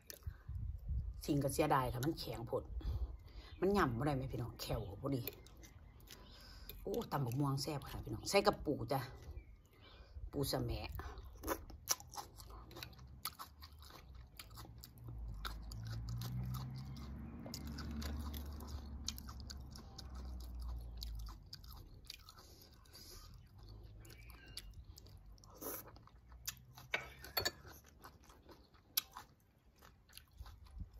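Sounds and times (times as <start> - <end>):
crunchy chewing: 4.4 - 8.2, 10.9 - 30.9.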